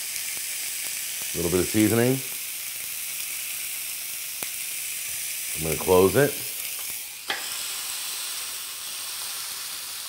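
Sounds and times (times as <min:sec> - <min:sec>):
steak sizzling on a grill: 0:00.0 - 0:10.0.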